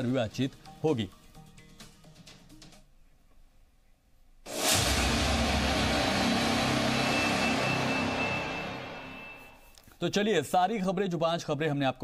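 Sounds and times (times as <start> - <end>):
whooshing music sting: 4.5 - 9.6.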